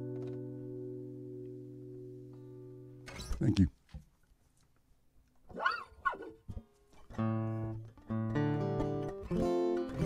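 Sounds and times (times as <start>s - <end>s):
yelp-like calls: 5.5s - 6.4s.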